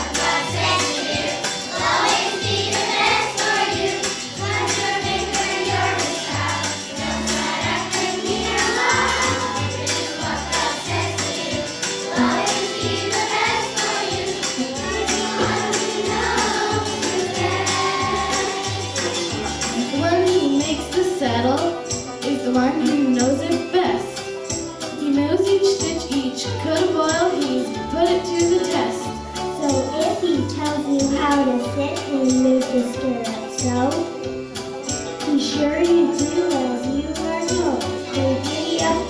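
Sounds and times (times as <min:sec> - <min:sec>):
children's choir singing: 0:00.0 - 0:20.4, 0:38.0 - 0:39.0
instrumental accompaniment: 0:00.0 - 0:39.0.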